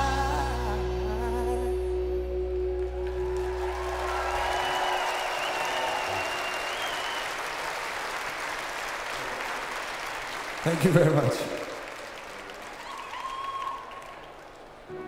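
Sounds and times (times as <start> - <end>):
crowd applauding and cheering: 2.8 - 15.0
long high whistle: 4.0 - 7.4.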